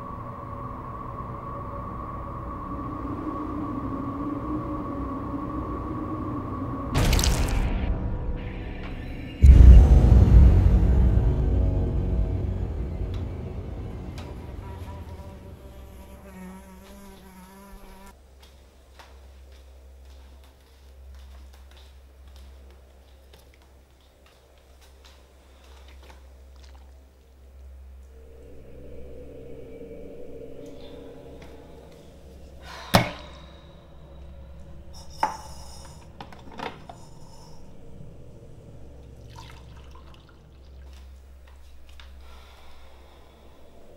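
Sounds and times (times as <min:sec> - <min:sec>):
deep rumble: 0:00.0 - 0:16.2, 0:27.4 - 0:43.9
fly buzzing: 0:14.0 - 0:18.2.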